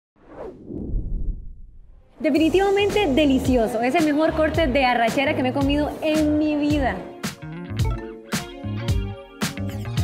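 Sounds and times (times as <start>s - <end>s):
swoosh with deep rumble: 0.2s - 2.2s.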